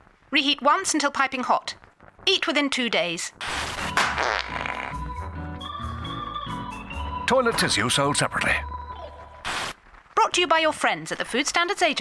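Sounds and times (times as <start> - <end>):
sputtering fart sound effect: 3.4 - 5.1
jingle music: 5.5 - 8.8.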